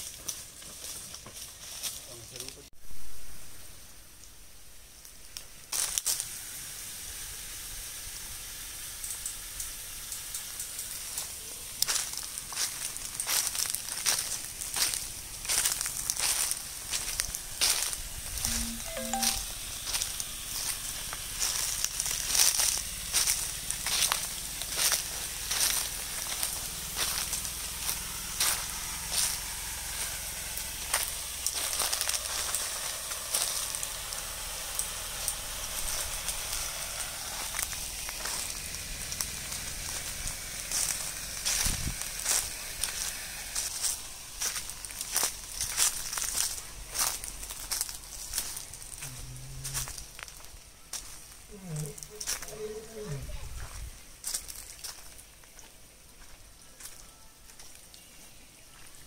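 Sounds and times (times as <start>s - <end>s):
footsteps crunching dry leaves: 0.0s - 2.7s, 5.7s - 6.4s, 11.0s - 59.0s.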